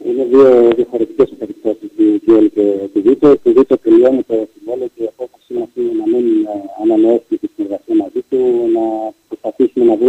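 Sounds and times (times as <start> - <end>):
person talking: 0.0 - 10.0.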